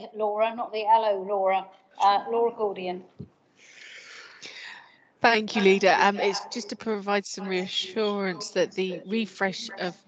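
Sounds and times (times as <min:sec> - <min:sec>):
breathy hiss into microphone: 0:03.6 - 0:04.8.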